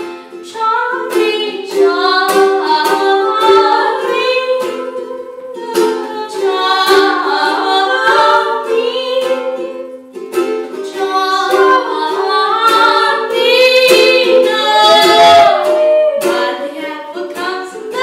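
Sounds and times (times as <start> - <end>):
strummed ukulele: 0.0 - 18.0
woman singing: 0.4 - 10.0, 10.8 - 18.0.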